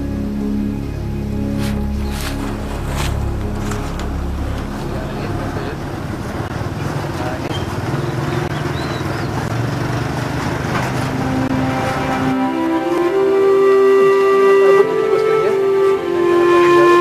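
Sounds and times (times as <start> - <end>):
low drone with held notes: 0.0 - 9.5, 11.0 - 17.0.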